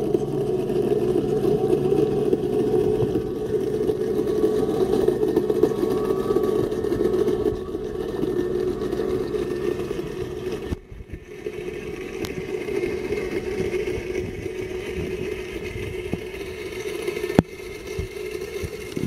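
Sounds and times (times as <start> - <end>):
pool cleaner motor hum underwater: 0.0 - 19.0.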